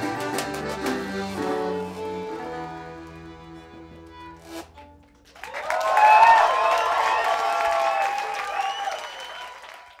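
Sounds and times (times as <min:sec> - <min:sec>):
band playing: 0:00.0 - 0:05.4
audience clapping and cheering: 0:05.2 - 0:10.0.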